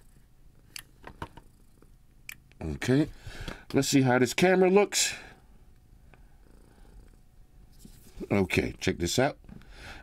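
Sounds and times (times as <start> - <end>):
cat purring: 1.3 - 2.0, 6.3 - 7.3.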